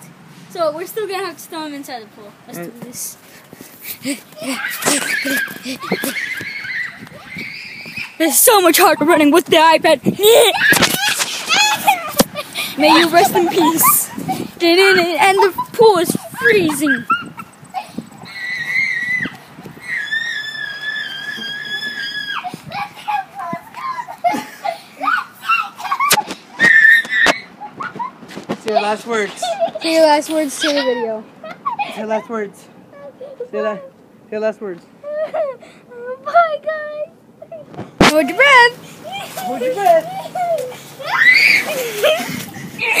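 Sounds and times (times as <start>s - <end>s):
children panting and laughing: 3.0s - 34.0s, 34.9s - 43.0s.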